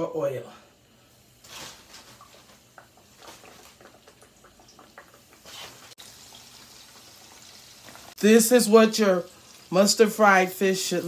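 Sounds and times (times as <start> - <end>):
oil popping and crackling: 1.4 - 10.1
fish sizzling in hot oil: 1.4 - 11.0.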